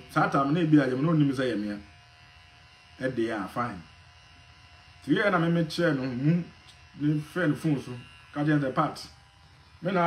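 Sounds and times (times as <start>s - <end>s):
low electrical buzz: 0.0s - 10.0s
person talking: 0.1s - 1.8s, 3.0s - 3.8s, 5.0s - 9.1s.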